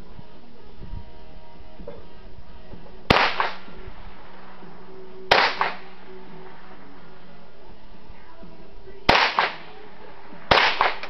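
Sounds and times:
rifle shots: 0:03.1 - 0:04.6, 0:05.3 - 0:06.8, 0:09.1 - 0:11.0.

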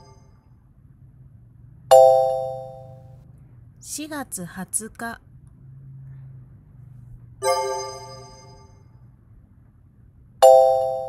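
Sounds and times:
electronic chime ding: 0:01.9 - 0:03.1, 0:07.4 - 0:08.8, 0:10.4 - 0:11.0.

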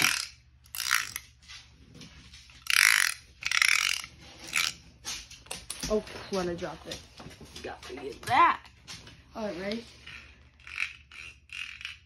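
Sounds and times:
fidget toy clicks: 0:00.0 - 0:01.2, 0:02.6 - 0:04.7, 0:10.6 - 0:12.0
plastic fidget toy rasping: 0:00.0 - 0:01.2, 0:02.6 - 0:04.8, 0:10.0 - 0:12.0.

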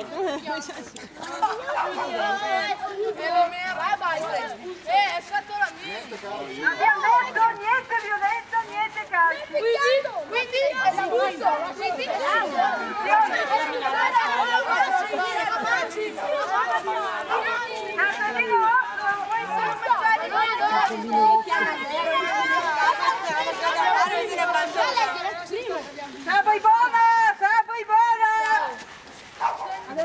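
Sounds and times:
many voices chattering: 0:00.0 - 0:30.0.

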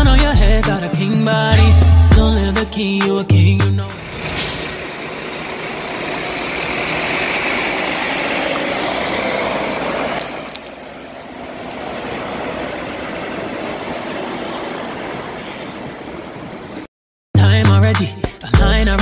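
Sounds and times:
coach driving past: 0:03.8 - 0:16.9.

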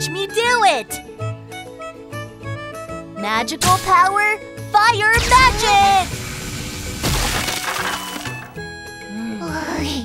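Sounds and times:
background music: 0:00.0 - 0:10.0
crash: 0:06.9 - 0:08.5.

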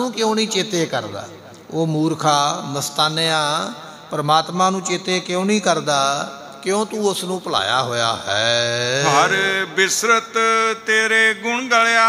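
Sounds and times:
man chanting: 0:07.2 - 0:12.0.

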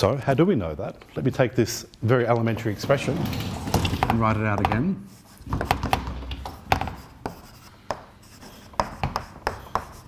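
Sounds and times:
chalk tapping on blackboard: 0:04.6 - 0:10.0
chalk scratching on blackboard: 0:05.0 - 0:10.0.

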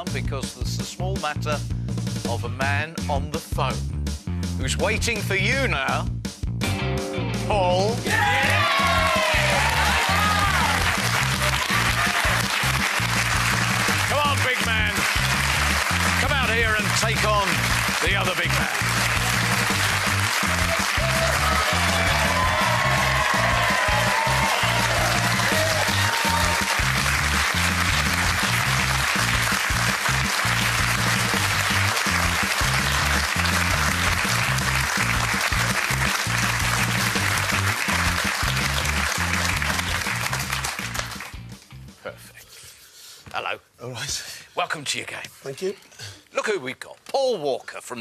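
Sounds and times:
music with steady beat: 0:00.0 - 0:42.1
audience applauding: 0:08.1 - 0:41.6.

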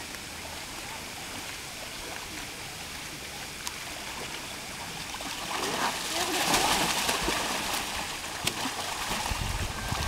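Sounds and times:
water splashing heavily: 0:04.1 - 0:10.0.

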